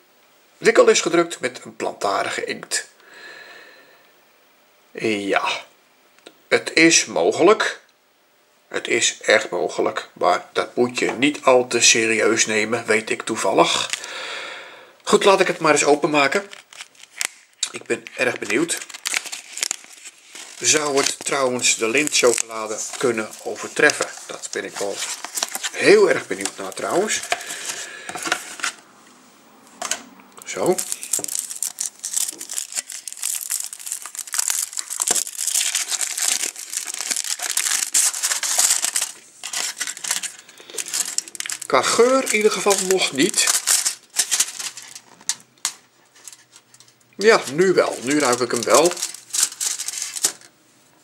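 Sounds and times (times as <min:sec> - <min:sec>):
cardboard and foil crinkling: 0:15.1 - 0:28.8, 0:30.4 - 0:50.5.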